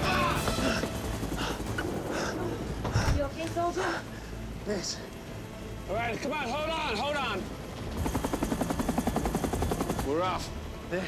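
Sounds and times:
helicopter rotor chop: 0.0s - 2.8s, 7.0s - 10.8s.

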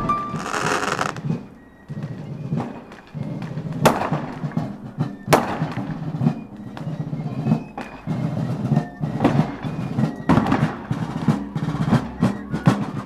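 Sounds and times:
fireworks crackling: 0.0s - 11.5s
fireworks bangs: 0.0s - 12.6s.

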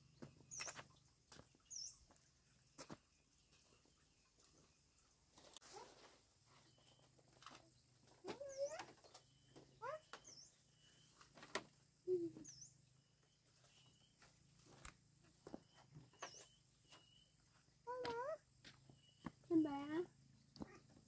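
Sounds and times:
high bird chirps: 8.3s - 11.2s, 12.1s - 12.8s, 15.4s - 19.3s.

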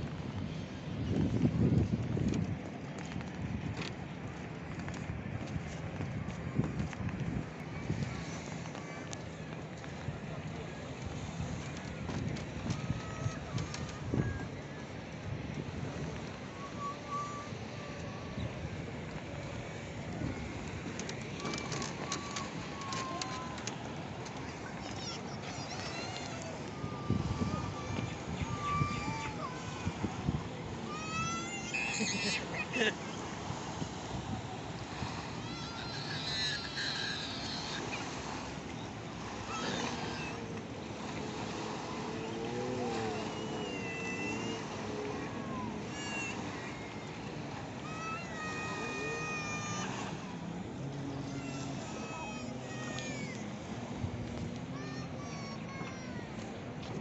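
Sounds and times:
steady open-air noise: 0.0s - 57.0s
surf: 0.0s - 57.0s
wind: 0.0s - 57.0s
high drawn-out calls: 35.8s - 38.4s.

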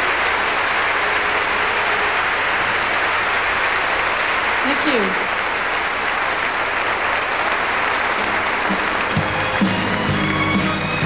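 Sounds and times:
audience applauding: 0.0s - 11.0s
band and orchestra playing: 8.2s - 11.0s.

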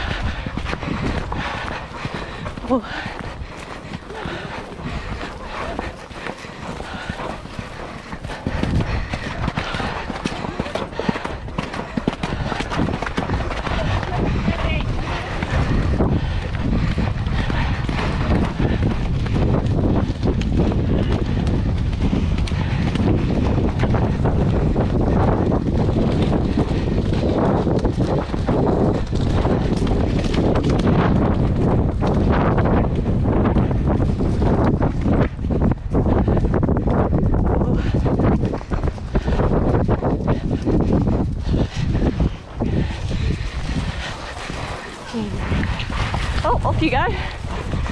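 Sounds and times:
horse hooves on ground: 0.0s - 47.9s
wind rumbling on microphone: 0.0s - 47.9s
people's voices: 2.6s - 7.4s, 13.6s - 16.4s, 45.0s - 45.6s.

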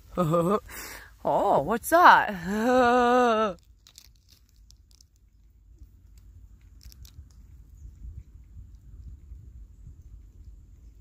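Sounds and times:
chipmunk gnawing crunching clicks: 3.5s - 11.0s
steady low rumble: 3.6s - 11.0s.

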